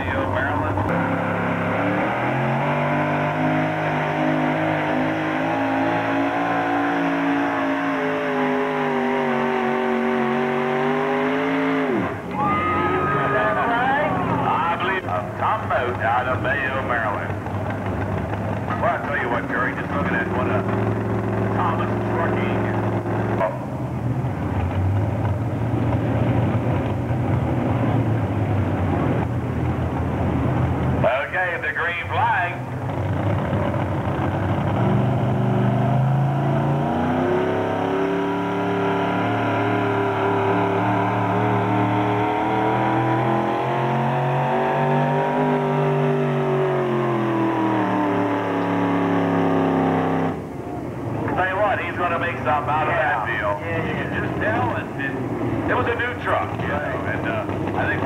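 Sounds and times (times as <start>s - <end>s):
truck engine revving: 0.0s - 58.0s.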